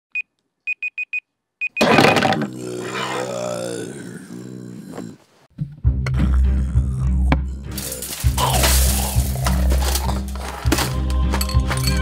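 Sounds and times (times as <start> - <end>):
person groaning: 1.9 - 5.3, 6.1 - 10.5.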